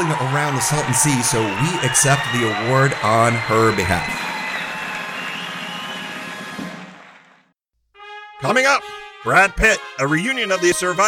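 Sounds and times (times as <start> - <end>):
audience applause and cheering: 0.0 - 7.6.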